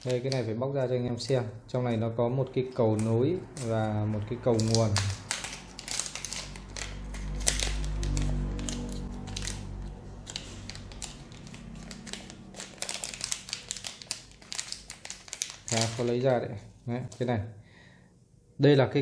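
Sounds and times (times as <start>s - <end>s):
plastic bag crinkling: 0.0s - 0.5s, 4.5s - 16.3s.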